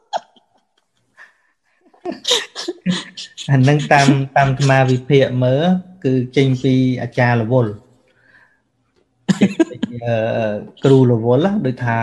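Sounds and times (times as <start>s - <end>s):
man coughing: 2.9s - 5.3s, 9.3s - 10.6s.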